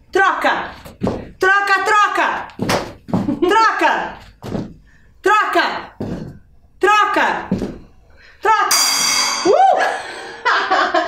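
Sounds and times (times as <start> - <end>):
gong ringing: 8.7 - 10.2.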